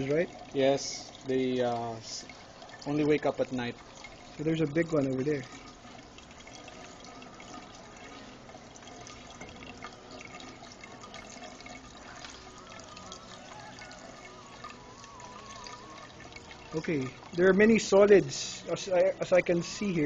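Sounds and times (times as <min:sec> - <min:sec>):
faint wavering tones: 0:00.0 - 0:20.0
water running and trickling: 0:00.0 - 0:20.0.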